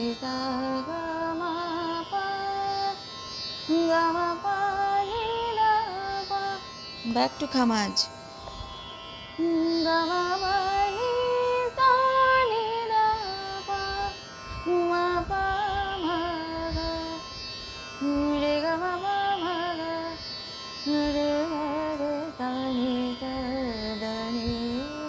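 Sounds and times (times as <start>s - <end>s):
woman singing ornamented phrases: 0.0s - 8.2s, 9.4s - 17.4s, 18.0s - 25.0s.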